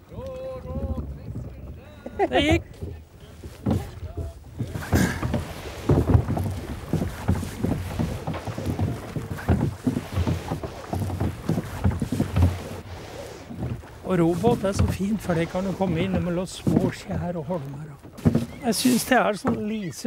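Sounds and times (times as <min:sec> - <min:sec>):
wind on microphone: 0:00.0 - 0:17.0
oar blades splashing water: 0:00.0 - 0:20.0
oars knocking in rowlocks: 0:00.0 - 0:20.0.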